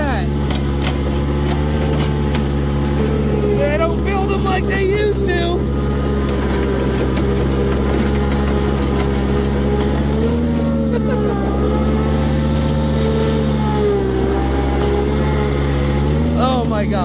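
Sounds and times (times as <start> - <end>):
mower engine running: 0.0 - 17.0.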